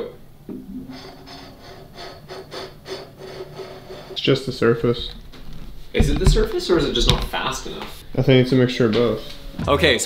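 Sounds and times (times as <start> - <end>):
cans scraping across a table: 0.8 - 5.7.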